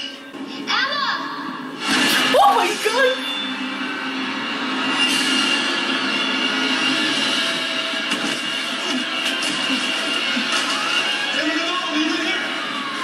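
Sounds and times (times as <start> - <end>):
dark rumbling drone: 2.9 - 11.3
sustained tones: 3.1 - 9.9.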